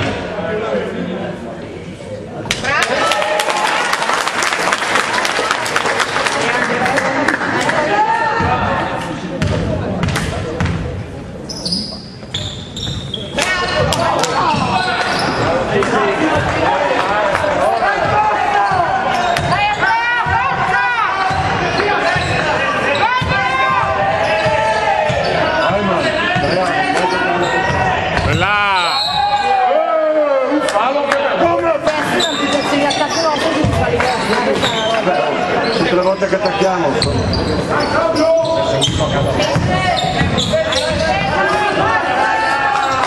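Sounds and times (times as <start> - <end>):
basketball bouncing on wooden court: 9.4 - 10.9, 38.8 - 41.1
players shouting: 13.2 - 43.0.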